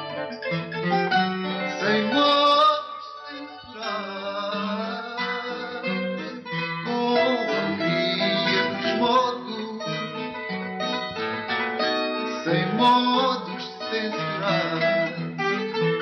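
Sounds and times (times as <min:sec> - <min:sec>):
guitar picking melody: 0:00.0 - 0:16.0
guitar strumming chords: 0:00.0 - 0:16.0
person singing: 0:00.0 - 0:16.0.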